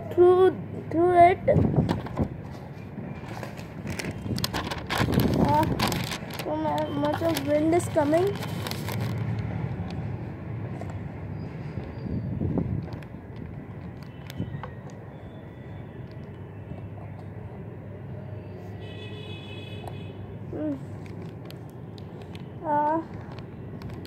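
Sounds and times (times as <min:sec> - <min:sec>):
wind buffeting microphone: 0:01.4 - 0:02.4, 0:03.8 - 0:06.4, 0:11.7 - 0:14.6.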